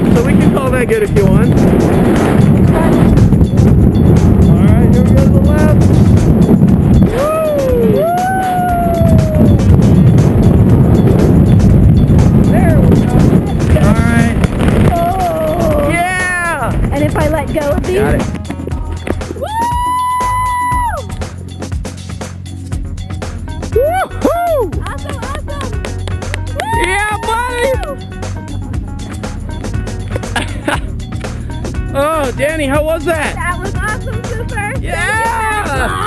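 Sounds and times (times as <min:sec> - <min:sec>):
wind rushing over microphone: 0:00.0 - 0:21.6, 0:23.8 - 0:36.0
music with gliding sung notes: 0:05.6 - 0:36.0.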